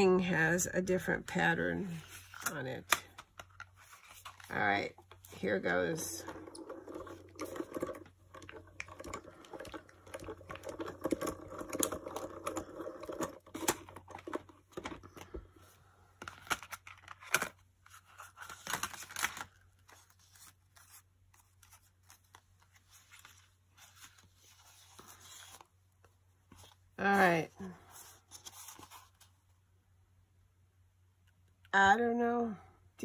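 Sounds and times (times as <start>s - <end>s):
plastic plates clicking and scraping: 6.2s - 15.3s
paper rustling and tearing: 16.3s - 25.7s.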